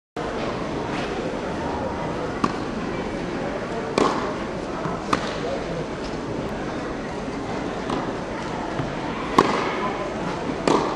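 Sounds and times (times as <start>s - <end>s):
murmur of people chatting: 0.2s - 10.9s
tennis ball being hit: 3.9s - 5.4s, 8.8s - 9.7s, 10.6s - 10.9s.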